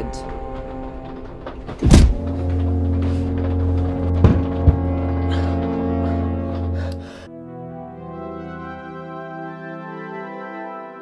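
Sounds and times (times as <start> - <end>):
low bass drone: 0.0 - 8.4
deep boom falling in pitch: 1.8 - 6.6.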